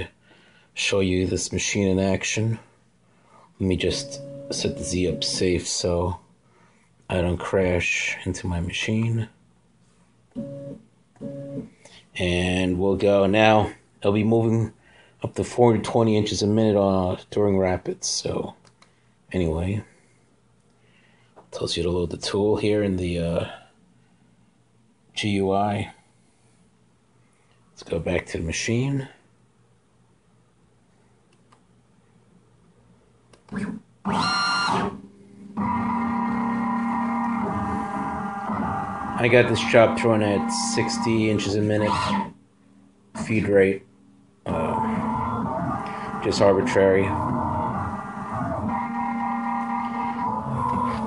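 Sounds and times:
faint low hum: 0.0 - 51.0
stepper motors whining: 35.6 - 42.3, 44.5 - 51.0.

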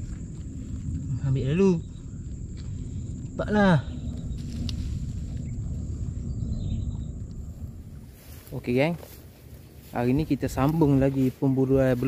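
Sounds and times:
low rough rumbling: 0.0 - 12.0.

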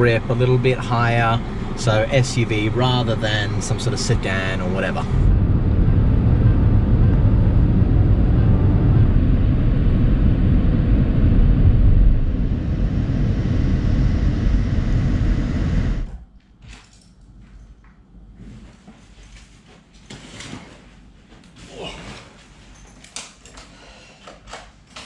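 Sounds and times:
car cabin road and engine rumble: 0.0 - 16.2.

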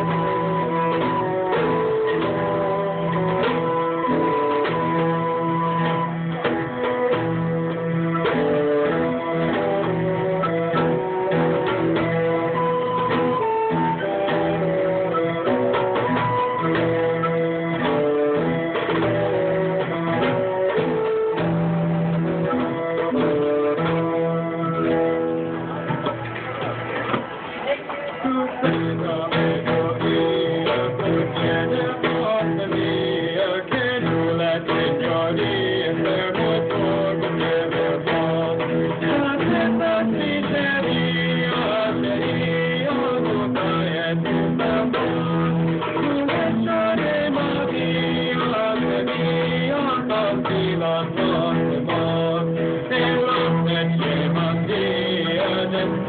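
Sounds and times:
bassoon: 0.0 - 26.8
hand drum: 0.0 - 27.6, 28.4 - 56.0.

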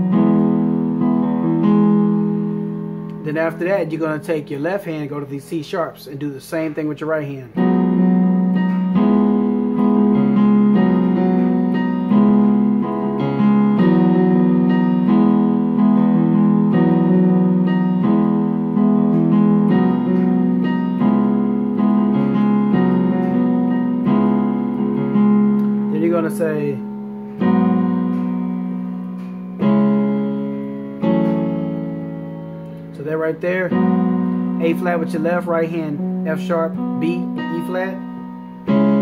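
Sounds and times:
digital keyboard playing chords: 0.0 - 39.0.

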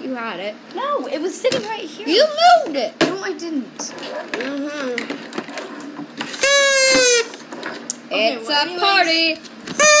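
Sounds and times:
toy party horn: 6.3 - 7.4, 9.7 - 10.0.

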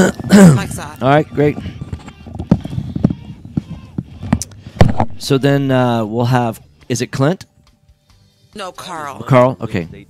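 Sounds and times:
headset knocks and clicks: 1.6 - 5.3.

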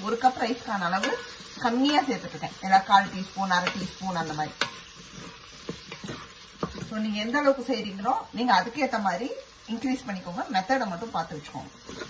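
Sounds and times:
vegetables sizzling in a pot: 0.0 - 12.0.

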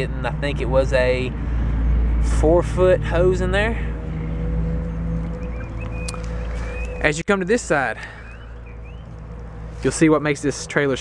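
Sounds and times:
low rumble and hum: 0.0 - 11.0
faint bird chirps: 4.8 - 7.2, 8.0 - 9.2.

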